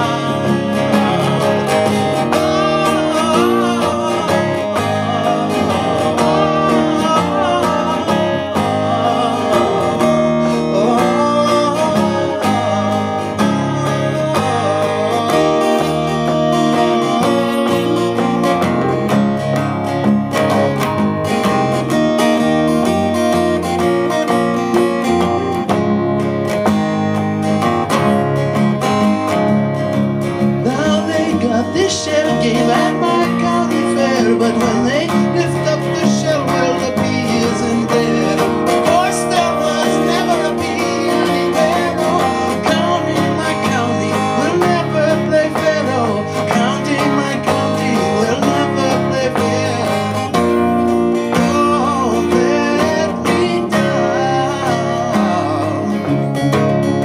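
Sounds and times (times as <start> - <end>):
acoustic guitar picking melody: 0.0 - 57.0
acoustic guitar strumming chords: 0.0 - 57.0.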